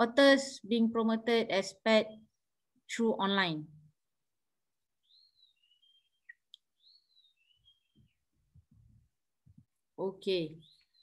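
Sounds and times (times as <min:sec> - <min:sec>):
faint bird song: 0:04.8 - 0:11.0.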